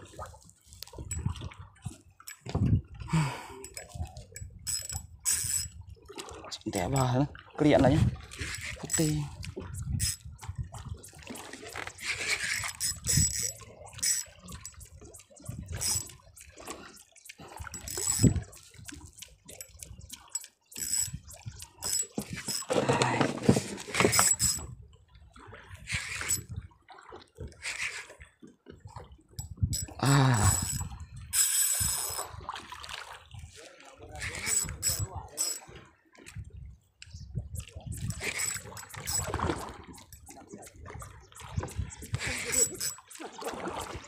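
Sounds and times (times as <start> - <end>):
water slapping against boat hull: 38.8 - 44.0.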